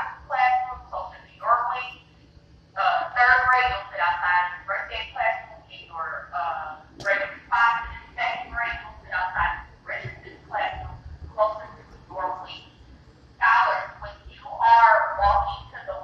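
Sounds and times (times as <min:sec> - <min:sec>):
person talking: 0:02.8 - 0:12.6.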